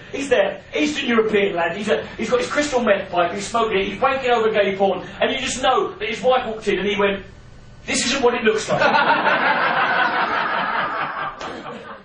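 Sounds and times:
audience laughing: 8.7 - 12.0.

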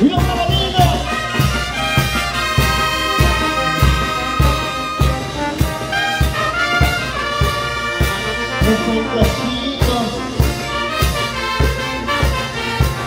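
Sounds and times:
bass drum beat: 0.0 - 13.0
brass band playing: 0.0 - 13.0.

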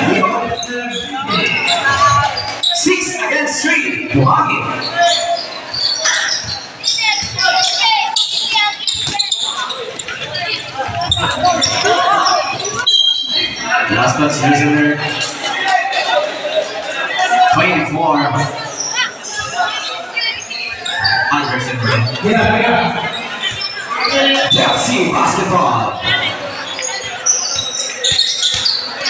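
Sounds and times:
mix of voices: 0.0 - 29.0
basketball bouncing on court: 27.5 - 28.8.

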